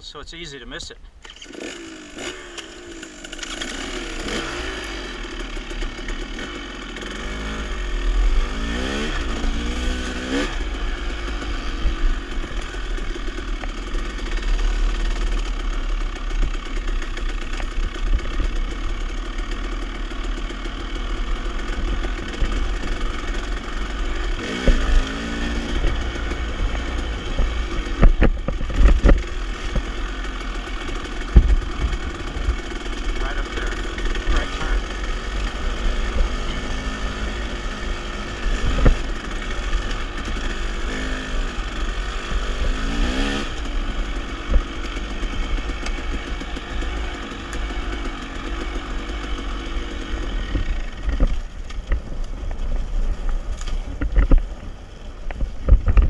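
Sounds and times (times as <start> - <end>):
dirt bike engine revving: 1.2 - 51.6.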